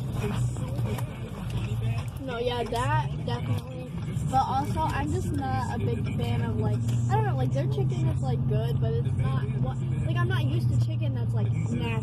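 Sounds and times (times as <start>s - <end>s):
car idling hum: 0.0s - 12.0s.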